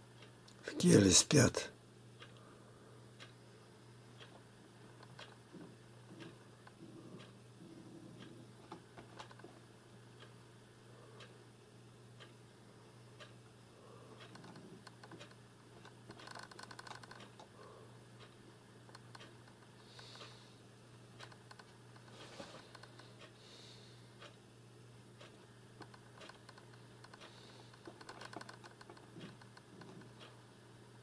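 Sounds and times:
computer mouse clicks: 0:08.2 - 0:09.6, 0:14.2 - 0:17.5, 0:21.2 - 0:23.0, 0:25.8 - 0:30.3.

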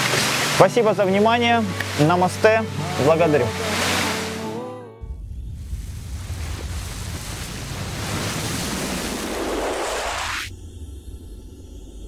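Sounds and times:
low drone: 0:02.6 - 0:08.0, 0:09.1 - 0:12.0
rushing whoosh: 0:05.0 - 0:12.0.

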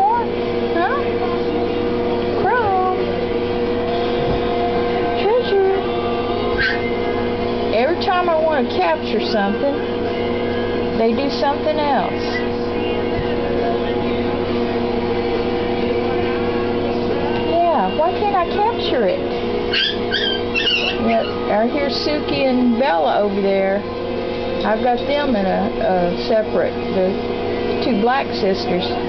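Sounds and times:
steady background hum: 0:00.0 - 0:29.0
puppy whining: 0:06.5 - 0:07.0, 0:19.7 - 0:21.6.

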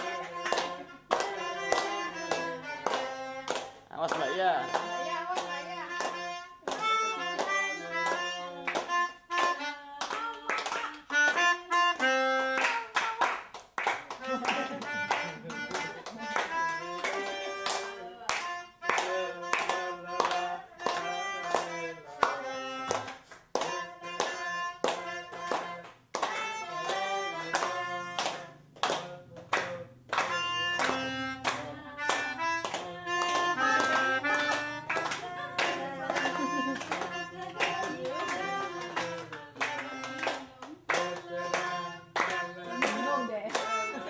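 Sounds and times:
group singing a birthday song: 0:00.0 - 0:12.0, 0:12.6 - 0:44.0
clapping in time: 0:00.0 - 0:44.0.

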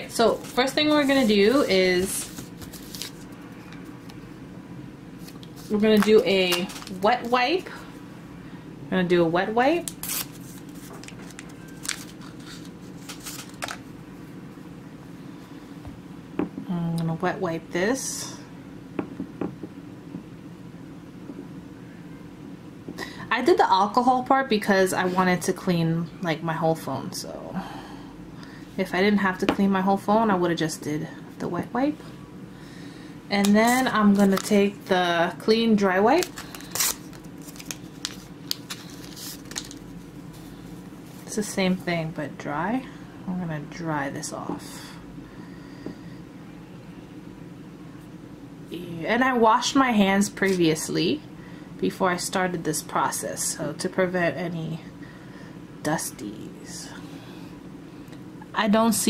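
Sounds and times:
steady low hum: 0:00.0 - 0:59.0
wipe packet crinkling and ripping: 0:00.5 - 0:03.4, 0:05.2 - 0:07.0, 0:09.8 - 0:13.8, 0:36.1 - 0:39.9.

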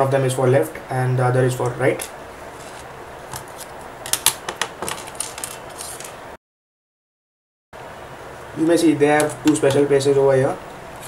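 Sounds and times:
low room hiss: 0:00.0 - 0:06.4, 0:07.8 - 0:11.0.

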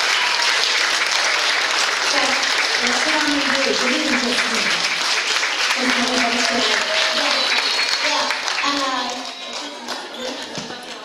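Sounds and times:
audience clapping: 0:00.0 - 0:11.0.

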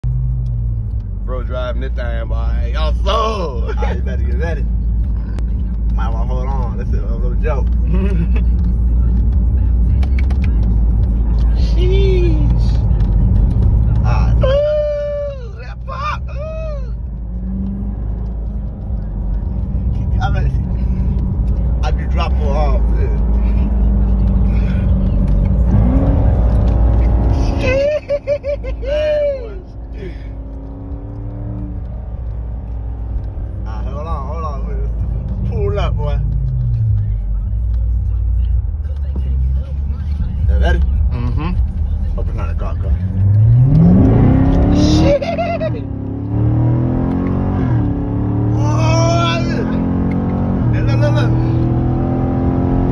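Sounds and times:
car engine droning in cabin: 0:00.0 - 0:52.9.

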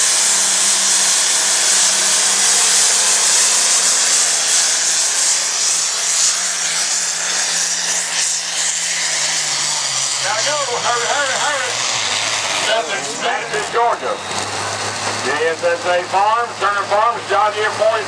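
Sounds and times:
tractor engine running flat out: 0:00.0 - 0:18.0.

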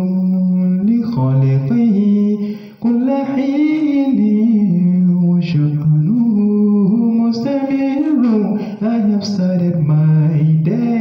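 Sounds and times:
man chanting unaccompanied: 0:00.0 - 0:11.0.

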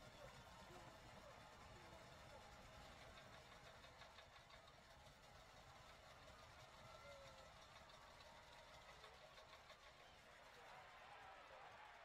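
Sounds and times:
faint background murmur: 0:00.0 - 0:12.0.

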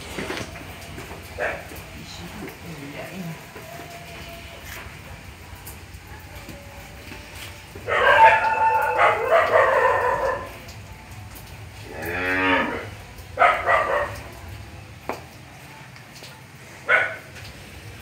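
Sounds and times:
calves mooing: 0:11.8 - 0:13.0.

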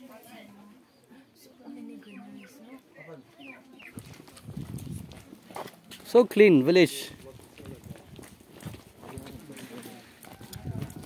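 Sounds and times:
low murmuring voices: 0:00.0 - 0:06.0, 0:07.1 - 0:11.0.

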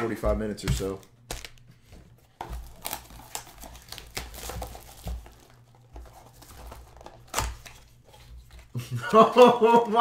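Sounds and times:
foil card pack crinkling: 0:00.7 - 0:01.7, 0:02.4 - 0:08.6.

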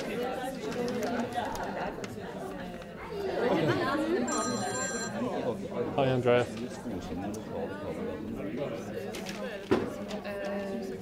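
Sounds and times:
people chattering: 0:00.0 - 0:11.0
brief high ringing tone: 0:04.3 - 0:05.2.

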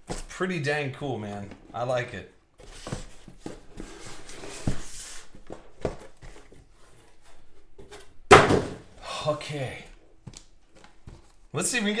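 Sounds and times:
cardboard rustling: 0:02.6 - 0:08.2
boxes knocking on cardboard: 0:08.3 - 0:08.9
loud thump: 0:08.3 - 0:08.9.

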